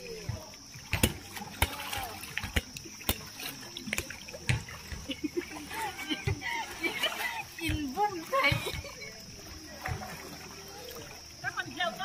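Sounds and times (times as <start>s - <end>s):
water splashing in pool: 0.0s - 12.0s.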